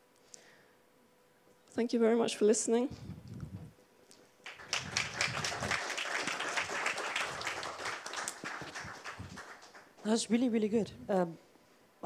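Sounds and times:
audience applauding: 0:04.5 - 0:10.1.

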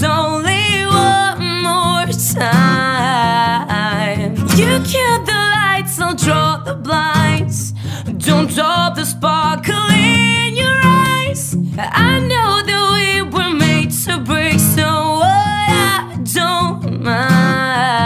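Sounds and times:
strummed acoustic guitar: 0:00.0 - 0:18.0
woman singing: 0:00.0 - 0:18.0.

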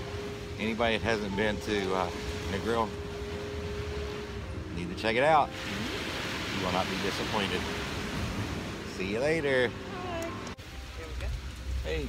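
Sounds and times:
beach ambience: 0:00.0 - 0:12.0
man talking: 0:00.6 - 0:02.9, 0:04.7 - 0:05.6, 0:06.5 - 0:07.7, 0:08.9 - 0:09.8.

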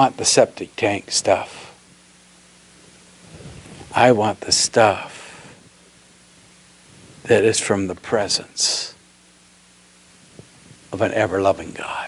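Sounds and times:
faint electrical hum: 0:00.0 - 0:12.0
room hiss: 0:00.0 - 0:12.0.

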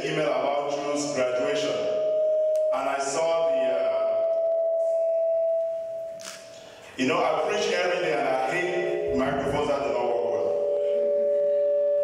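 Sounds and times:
microphone feedback ringing: 0:00.0 - 0:12.0.

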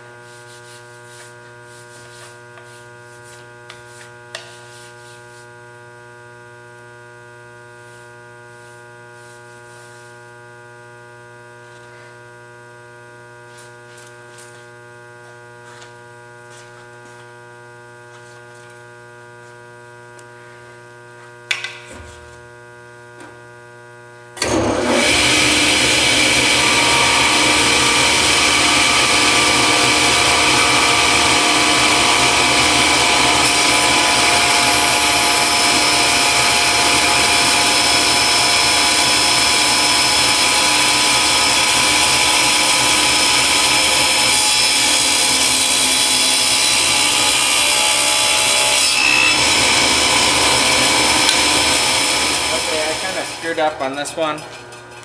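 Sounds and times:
table saw cutting acrylic: 0:24.4 - 0:55.0.

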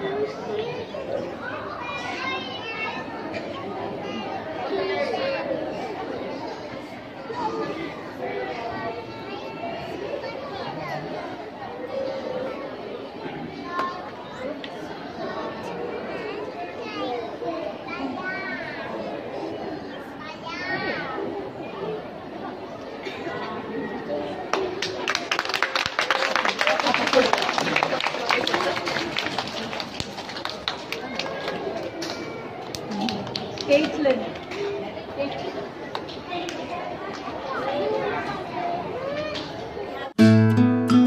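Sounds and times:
indistinct chatter: 0:00.0 - 0:41.0.

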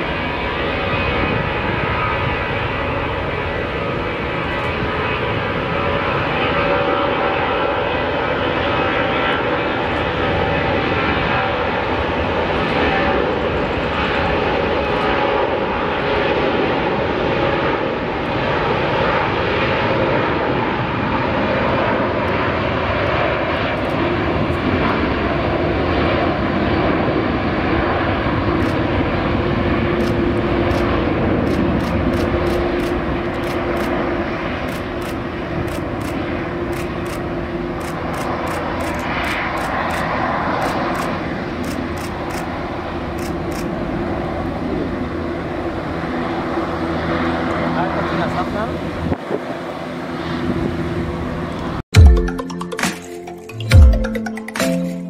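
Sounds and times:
loud jet engine roar: 0:00.0 - 0:52.0.

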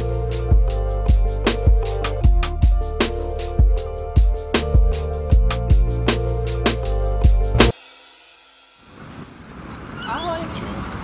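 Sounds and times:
low street noise hum: 0:08.8 - 0:11.0
glass door squeaking: 0:09.2 - 0:10.8.

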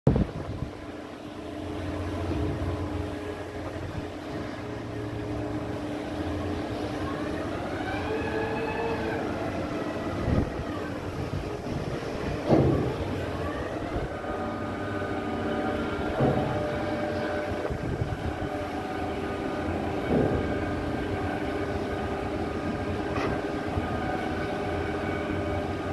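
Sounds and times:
machinery humming: 0:00.1 - 0:25.9
machinery whine: 0:00.1 - 0:25.9.

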